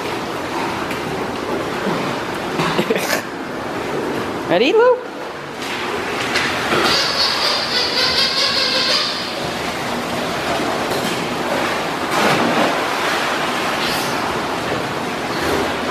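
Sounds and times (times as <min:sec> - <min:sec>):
water splashing in a pool: 0:05.2 - 0:15.9.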